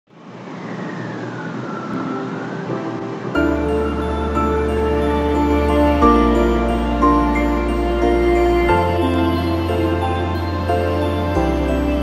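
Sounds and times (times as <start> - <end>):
steady rushing noise: 0.1 - 12.0
high tone gliding downward: 0.2 - 12.0.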